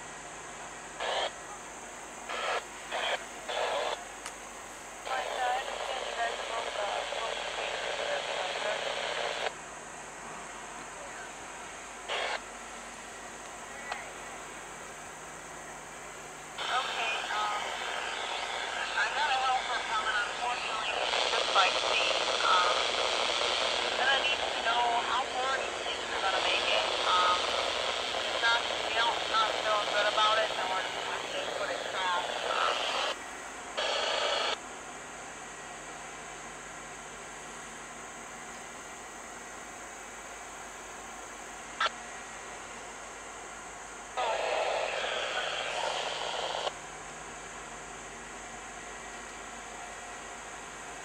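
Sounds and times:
radio static hiss: 0:00.0 - 0:51.0
faint garbled radio voice: 0:01.0 - 0:04.2, 0:05.0 - 0:09.5, 0:10.4 - 0:12.4, 0:16.6 - 0:33.2, 0:44.2 - 0:46.8.

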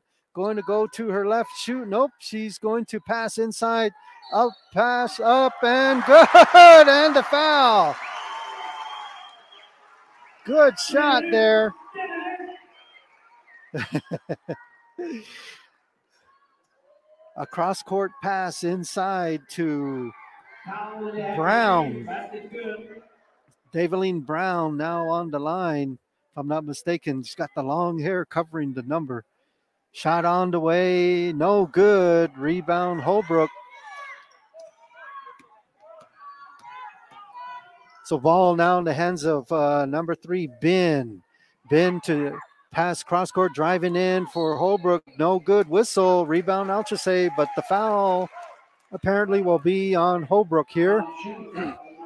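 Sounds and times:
man laughing: 0:05.2 - 0:07.9, 0:13.8 - 0:15.4
spectators' voices overlapping: 0:10.4 - 0:13.8, 0:17.5 - 0:23.2, 0:43.0 - 0:52.0.

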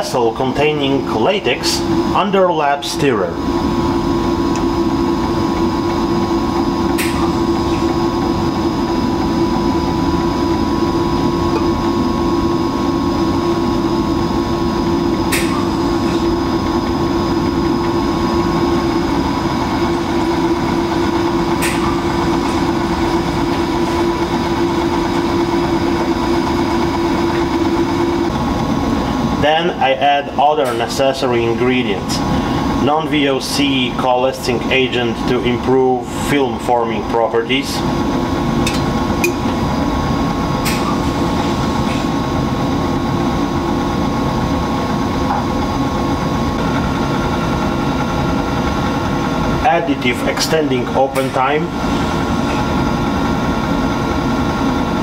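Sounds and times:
stirrer motor running: 0:00.2 - 0:55.0.

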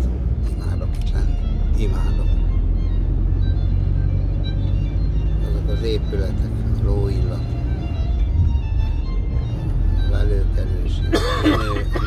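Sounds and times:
vehicle engine and tyres rumbling: 0:00.0 - 0:12.0.

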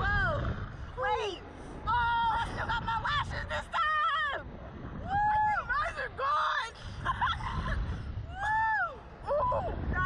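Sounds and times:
low rumble of wind: 0:00.0 - 0:10.0
women shrieking and laughing: 0:05.0 - 0:09.8.

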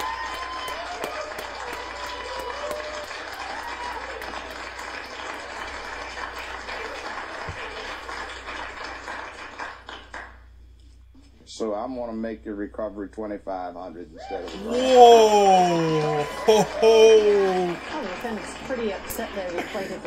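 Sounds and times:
audience applauding: 0:00.0 - 0:10.4, 0:14.2 - 0:20.0
voices calling out: 0:14.4 - 0:18.0.

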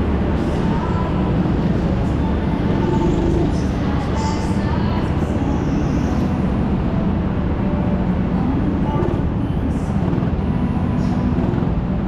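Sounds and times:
go-kart low rumble: 0:00.0 - 0:12.0.

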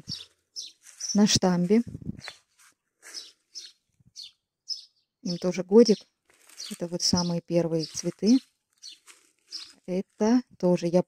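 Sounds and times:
small bird chirping: 0:00.0 - 0:10.4.

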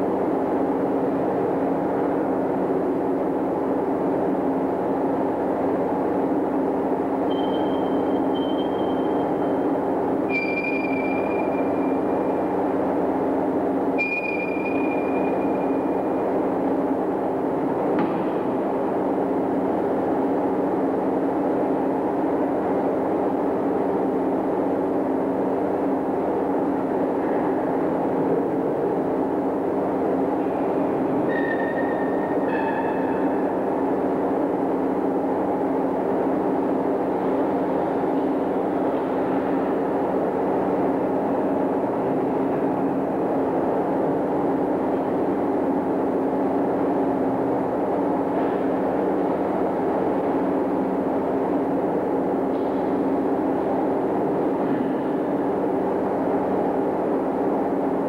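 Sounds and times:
low hum with rushing noise: 0:00.0 - 0:58.0.

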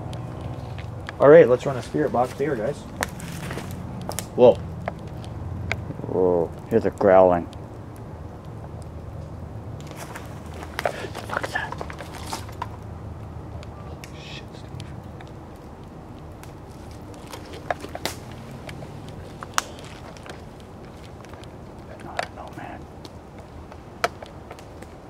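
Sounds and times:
clicks and crackles: 0:00.0 - 0:25.0.

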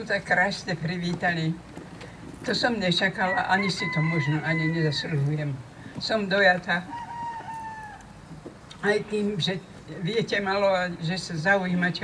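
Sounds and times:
rooster crowing: 0:03.2 - 0:05.3, 0:06.9 - 0:08.2.

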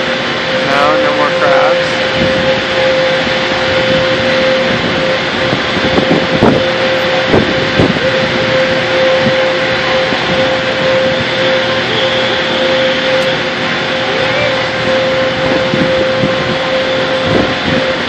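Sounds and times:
constant hum: 0:00.0 - 0:18.0
power plant roar: 0:00.0 - 0:18.0.

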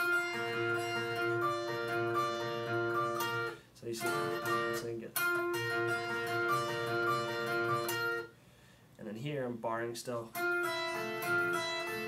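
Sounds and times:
electric guitar lead melody: 0:00.0 - 0:08.3, 0:10.4 - 0:12.0.

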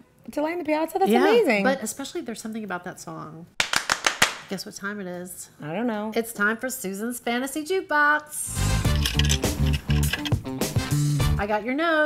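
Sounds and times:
upbeat music jingle with bass: 0:08.5 - 0:11.5.

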